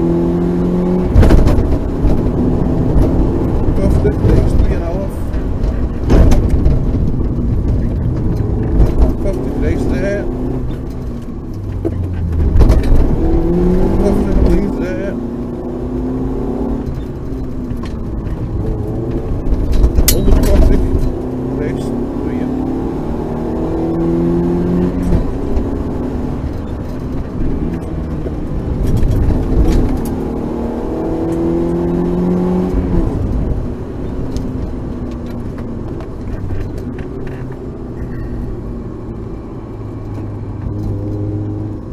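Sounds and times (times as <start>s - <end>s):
car engine revving: 0.0s - 41.9s
loud thumps: 1.1s - 9.5s, 11.6s - 14.8s.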